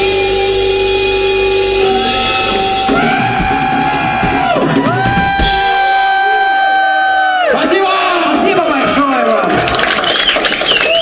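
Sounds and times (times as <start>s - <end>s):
live rock band playing: 0.0s - 6.9s.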